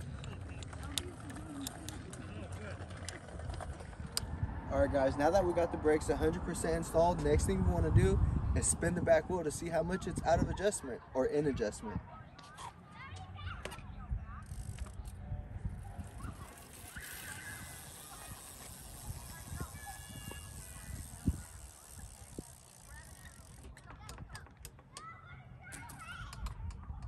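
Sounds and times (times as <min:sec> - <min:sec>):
bicycle wheel ticking: 0:00.0 - 0:04.6, 0:14.4 - 0:24.9.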